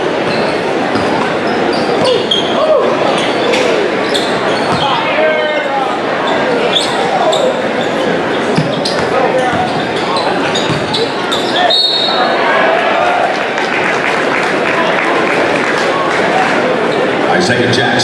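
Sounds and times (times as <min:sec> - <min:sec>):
crowd chatter and shouts: 0:00.0 - 0:18.0
basketball bouncing on court: 0:00.2 - 0:02.5, 0:04.5 - 0:05.0, 0:08.5 - 0:11.6
shoes squeaking: 0:00.2 - 0:05.2, 0:06.2 - 0:12.2.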